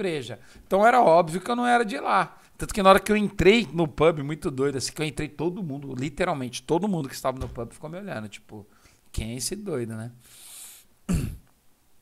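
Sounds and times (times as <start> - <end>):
man taking a breath: 0.4 - 0.7, 8.7 - 9.1, 10.2 - 11.0
man clearing his throat: 11.1 - 11.5.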